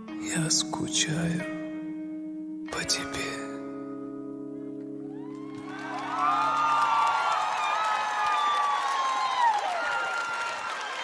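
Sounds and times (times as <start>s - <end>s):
audience cheering and applauding: 5.1s - 11.0s.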